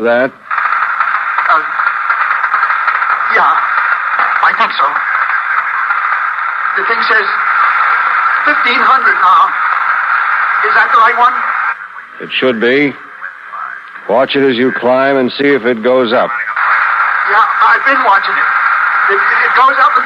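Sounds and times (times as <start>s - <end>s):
radio static hiss: 0.0s - 20.0s
distorted voice on radio: 3.0s - 15.2s, 15.9s - 20.0s.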